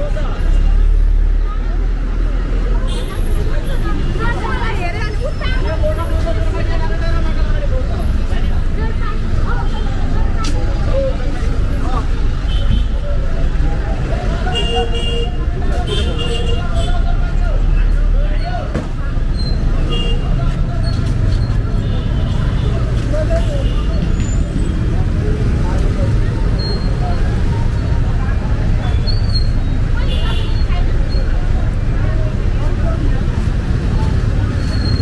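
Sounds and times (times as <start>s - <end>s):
bus engine rumbling: 0.0s - 35.0s
chatter of passers-by: 0.0s - 35.0s.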